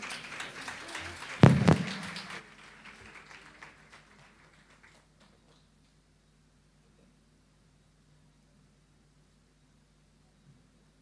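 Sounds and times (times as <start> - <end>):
scattered applause: 0.0 - 6.0
loud thumps: 1.4 - 2.2.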